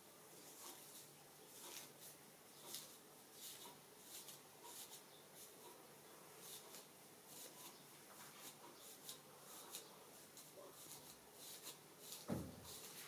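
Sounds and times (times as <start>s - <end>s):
comb scratching through hair: 0.4s - 5.8s, 6.4s - 13.0s.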